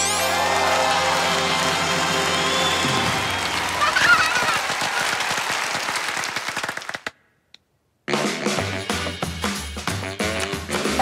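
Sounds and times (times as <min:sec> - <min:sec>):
stage show music: 0:00.0 - 0:05.0, 0:08.1 - 0:11.0
high cheer: 0:00.0 - 0:07.0
audience applause: 0:00.0 - 0:07.1.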